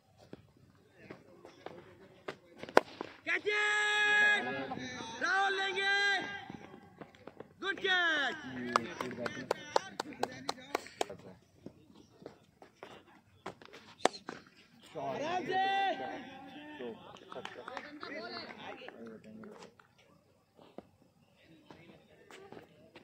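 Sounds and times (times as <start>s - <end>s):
cricket bat hitting ball: 2.6s - 3.2s
players shouting: 3.3s - 6.7s, 15.2s - 17.0s.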